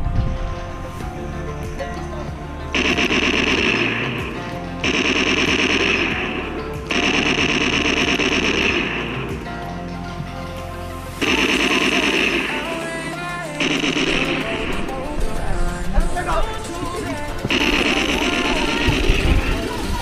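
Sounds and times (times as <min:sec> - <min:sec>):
background music: 0:00.0 - 0:20.0
laser tag rapid-fire bursts: 0:02.8 - 0:09.4, 0:11.2 - 0:20.0.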